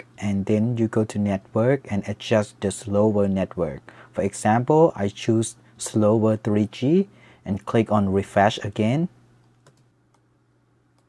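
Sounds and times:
low steady hum: 0:00.0 - 0:11.0
computer mouse clicks: 0:09.4 - 0:10.3.

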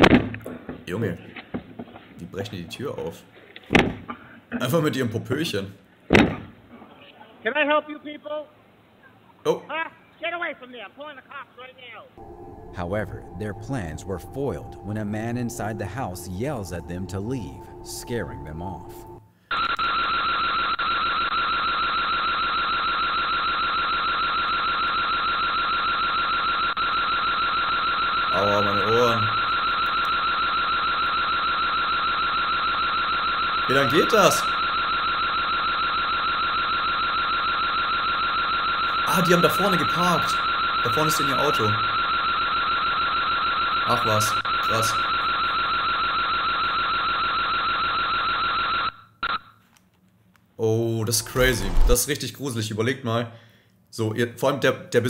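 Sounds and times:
warbling electronic alarm siren: 0:12.2 - 0:49.5.

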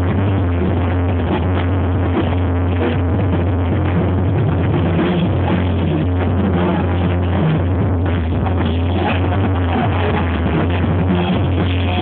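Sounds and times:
heavy bass line: 0:00.0 - 0:12.0.

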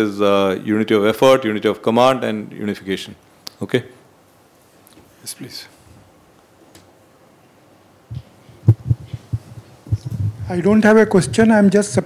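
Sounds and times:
microphone being bumped: 0:08.1 - 0:12.0.

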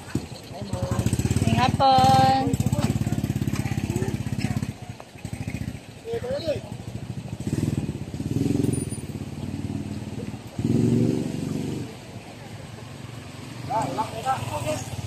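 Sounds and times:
small motorcycle engines: 0:00.0 - 0:15.0.

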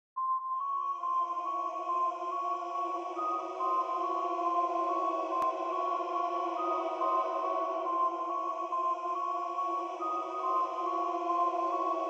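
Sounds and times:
low sustained synth tones: 0:00.8 - 0:12.0.

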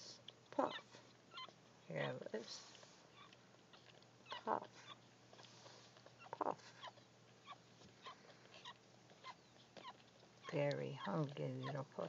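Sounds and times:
puppies suckling clicks: 0:00.0 - 0:12.0
puppy whimper: 0:00.6 - 0:02.3, 0:03.1 - 0:12.0.

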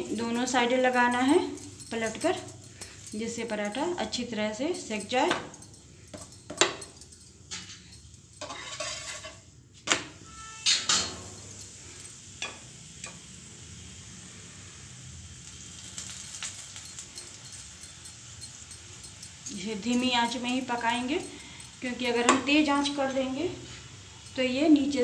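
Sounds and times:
steel spoon scraping griddle: 0:07.5 - 0:09.5, 0:15.5 - 0:25.0
flatbread sizzling on a griddle: 0:08.4 - 0:09.6, 0:10.2 - 0:21.1, 0:21.7 - 0:25.0.

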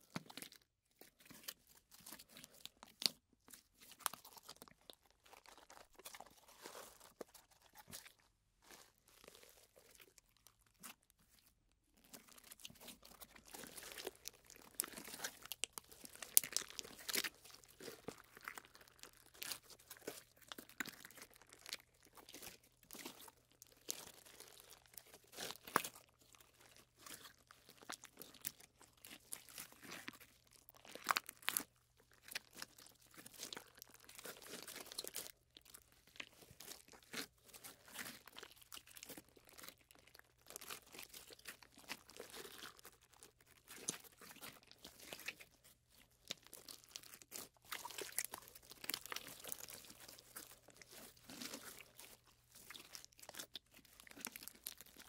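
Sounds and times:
slime stretching sticky crackles: 0:12.0 - 0:55.0.

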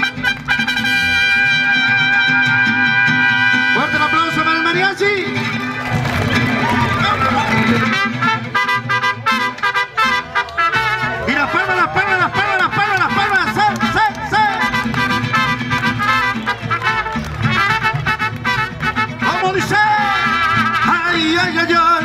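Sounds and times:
trumpets playing melody: 0:00.0 - 0:05.9, 0:07.0 - 0:22.0
mariachi band playing: 0:00.0 - 0:22.0.

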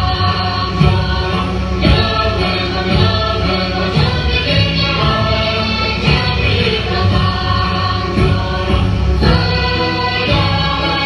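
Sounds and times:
voices singing held notes: 0:00.0 - 0:11.0.

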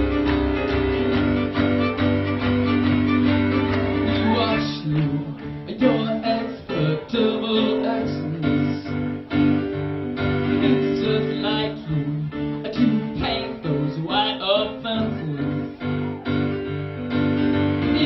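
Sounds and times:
live rock band playing: 0:00.0 - 0:06.8
person singing: 0:03.2 - 0:09.5, 0:10.2 - 0:17.0, 0:17.8 - 0:18.0.

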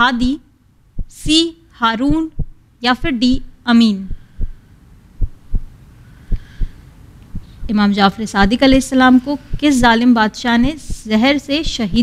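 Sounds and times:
faint hum: 0:00.0 - 0:12.0
heartbeat thumps: 0:00.9 - 0:01.4, 0:02.0 - 0:07.8, 0:08.4 - 0:12.0.

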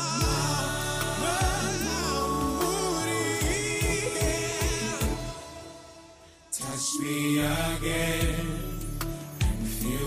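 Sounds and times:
backing music with bass and drums: 0:00.0 - 0:05.5, 0:08.0 - 0:10.0
man singing into microphone: 0:00.0 - 0:05.7, 0:06.5 - 0:10.0.

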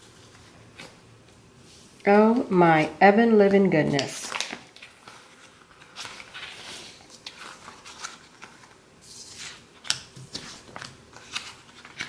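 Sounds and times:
paper rustling: 0:03.6 - 0:12.0.

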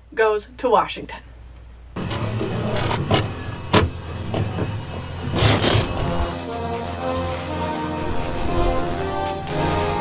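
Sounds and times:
mechanical clunks: 0:02.0 - 0:06.3
motor whir: 0:02.0 - 0:10.0.

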